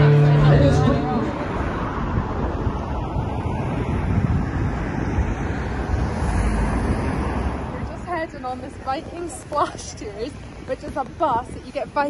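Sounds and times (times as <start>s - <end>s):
wind buffeting microphone: 0.7s - 12.0s.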